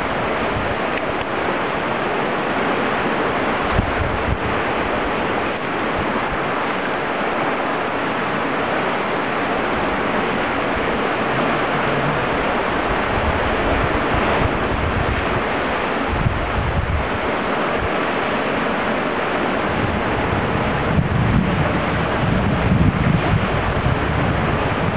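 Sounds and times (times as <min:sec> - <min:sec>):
wind buffeting microphone: 0:00.0 - 0:07.6, 0:08.2 - 0:24.9
surf: 0:00.0 - 0:24.9
wind: 0:00.0 - 0:24.9.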